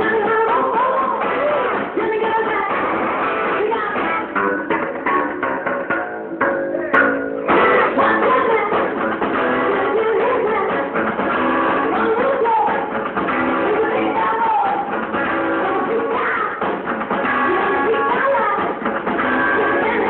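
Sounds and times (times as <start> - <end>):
woman singing: 0.0 - 5.4, 6.8 - 20.0
drums: 0.0 - 20.0
electric guitar: 0.0 - 20.0
upright bass: 0.0 - 20.0.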